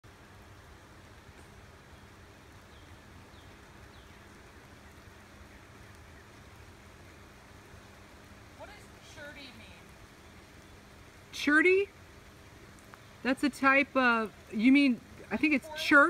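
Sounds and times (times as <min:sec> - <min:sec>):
outdoor hiss with low rumble: 0:00.0 - 0:16.0.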